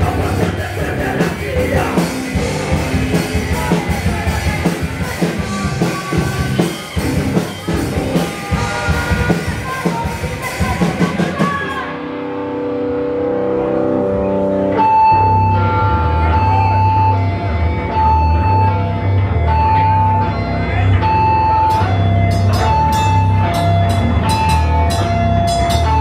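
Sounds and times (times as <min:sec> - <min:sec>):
bass guitar: 0:00.0 - 0:26.0
guitar riff: 0:00.0 - 0:26.0.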